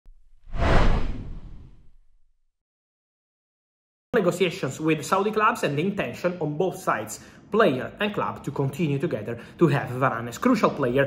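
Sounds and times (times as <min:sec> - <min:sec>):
deep low rumble: 0:00.1 - 0:02.2
whoosh: 0:00.1 - 0:02.3.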